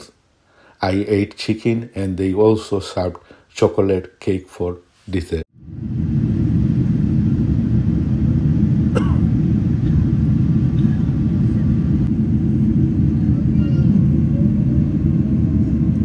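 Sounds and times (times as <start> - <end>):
airliner cabin low rumble: 5.6 - 16.0.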